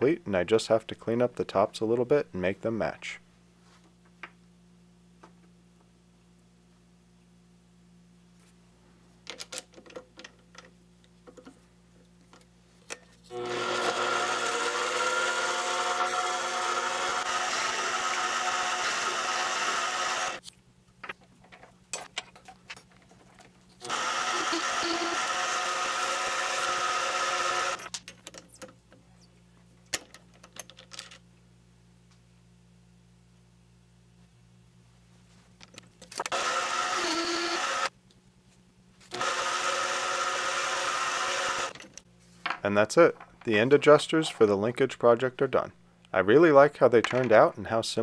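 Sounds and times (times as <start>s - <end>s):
lathe motor running: 13.3s - 20.4s, 23.8s - 27.8s, 36.3s - 37.9s, 39.1s - 41.8s.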